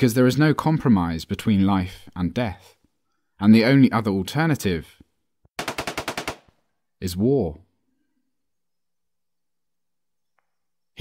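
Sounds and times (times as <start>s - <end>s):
automatic gunfire burst: 5.6s - 6.5s.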